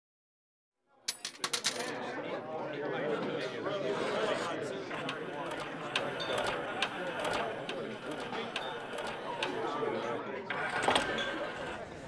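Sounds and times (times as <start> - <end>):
crowd chatter: 1.1 - 12.0
jukebox mechanism clicking: 4.9 - 9.8, 10.5 - 11.9.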